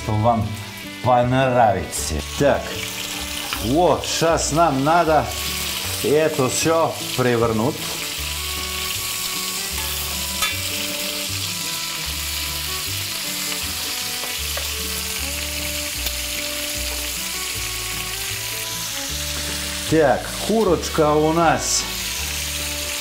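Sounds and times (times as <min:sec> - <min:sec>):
meat sizzling in a pan: 0:00.0 - 0:23.0
metal tongs turning meat: 0:09.6 - 0:11.3.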